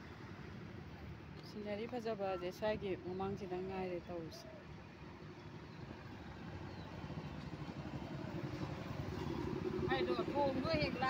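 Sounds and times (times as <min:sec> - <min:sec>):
vehicle engine approaching: 0:05.6 - 0:11.0.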